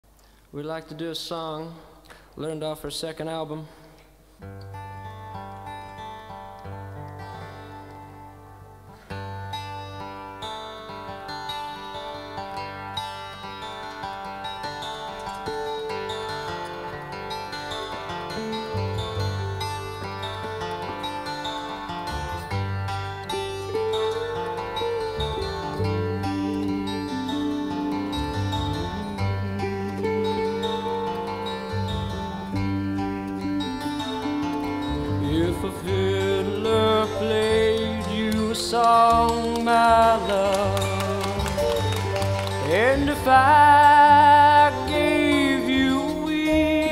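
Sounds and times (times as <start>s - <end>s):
folk-jazz band playing: 4.7s - 46.9s.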